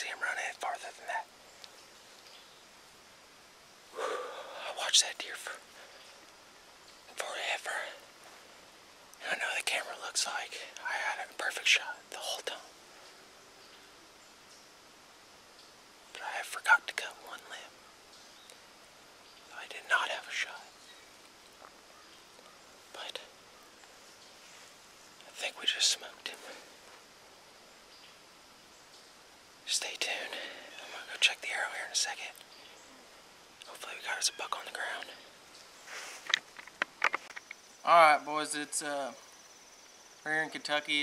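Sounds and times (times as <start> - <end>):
man whispering: 0.0 - 1.3, 4.0 - 6.0, 7.1 - 8.1, 9.2 - 12.7, 16.1 - 17.7, 19.5 - 20.8, 22.9 - 23.4, 25.2 - 26.8, 29.6 - 32.4, 33.6 - 35.3.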